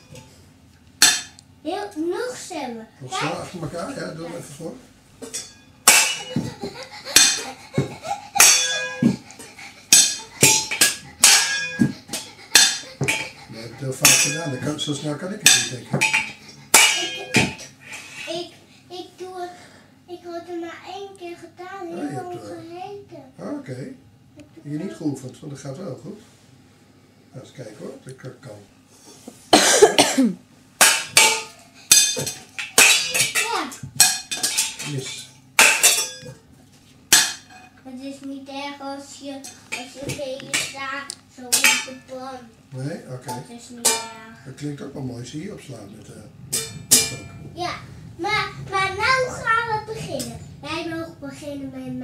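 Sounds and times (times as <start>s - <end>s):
spatula striking steel pots: 1.0s - 1.4s, 5.2s - 18.2s, 30.8s - 36.4s, 37.1s - 37.8s, 41.5s - 42.1s, 43.3s - 44.4s, 46.5s - 47.5s.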